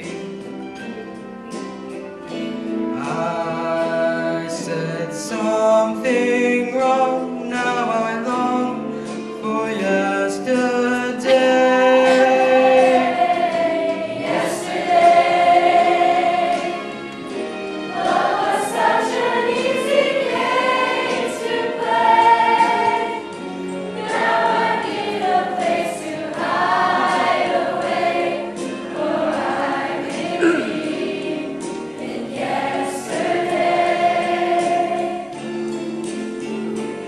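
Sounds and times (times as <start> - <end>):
choir singing a pop song: 9.4 - 35.8.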